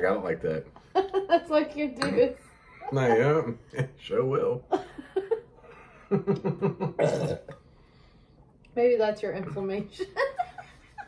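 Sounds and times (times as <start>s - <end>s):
belch-like sound: 6.9s - 7.6s
man gulping from bottle: 7.0s - 7.6s.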